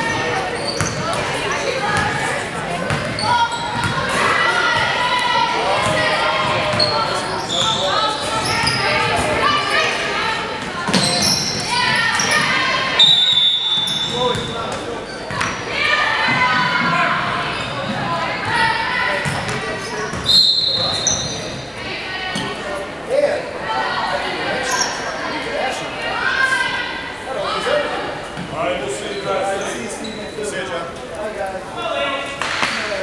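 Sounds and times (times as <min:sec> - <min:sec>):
people talking and calling out: 0:00.0 - 0:33.0.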